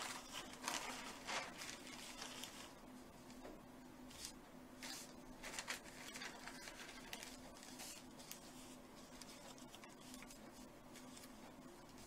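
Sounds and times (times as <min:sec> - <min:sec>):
paper rustling under hand: 0:00.0 - 0:03.4, 0:04.1 - 0:12.0.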